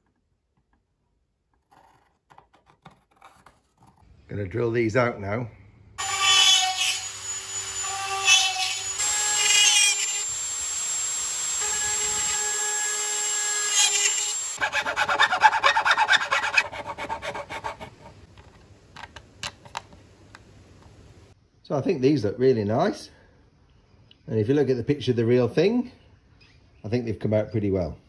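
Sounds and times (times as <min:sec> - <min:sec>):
rotary tool whining: 0:06.0 - 0:17.8
needle file rasping: 0:14.6 - 0:18.3.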